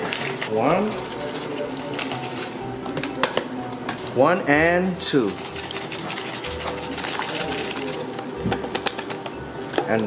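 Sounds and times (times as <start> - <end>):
paper crackles: 0.0 - 2.6, 5.2 - 9.1
dry mix rustling into bowl: 0.0 - 2.8, 4.8 - 8.8.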